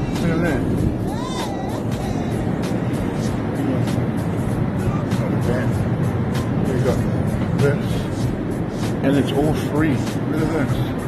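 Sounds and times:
airliner engine and airflow rush: 0.0s - 11.0s
background music: 0.0s - 11.0s
faint voices: 0.0s - 11.0s.

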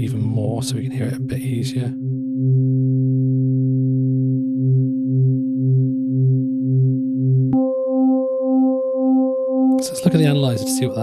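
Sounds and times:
pulsing synthesizer note: 2.0s - 11.0s.

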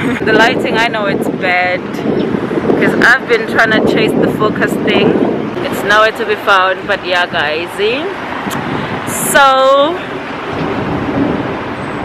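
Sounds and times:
rushing outdoor background noise: 0.0s - 12.0s.

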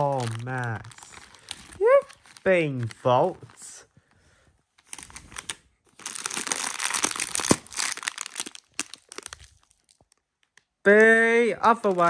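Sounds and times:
plastic pouch crinkling: 0.0s - 3.8s, 4.8s - 10.8s, 11.7s - 12.0s
bag crackling when handled: 4.8s - 10.2s.

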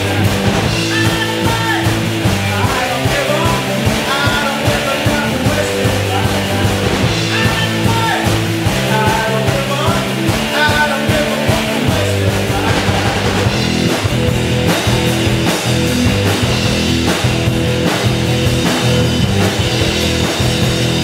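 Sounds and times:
rock band playing live: 0.0s - 21.0s.

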